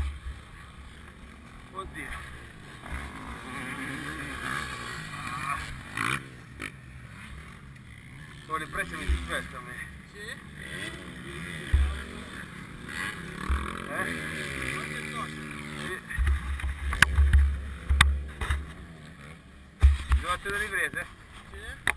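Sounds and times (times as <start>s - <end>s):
distant dirt bike revving: 0.0s - 21.9s
sharp knocks: 11.7s - 12.0s, 19.8s - 20.3s.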